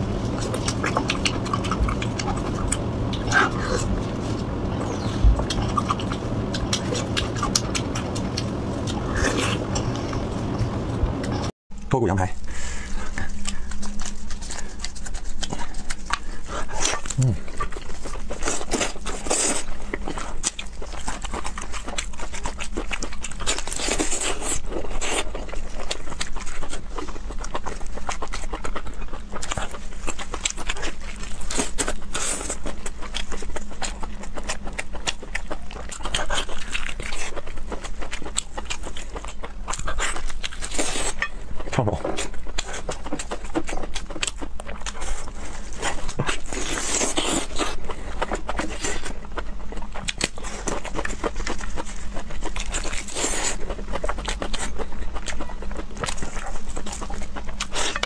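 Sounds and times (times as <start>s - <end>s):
wet chewing and lip smacking: 0.0s - 11.5s, 12.9s - 58.0s.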